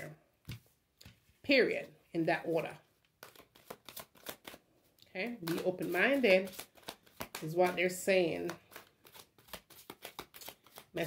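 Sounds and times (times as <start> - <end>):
cards being shuffled: 3.0 - 4.6, 5.4 - 11.0.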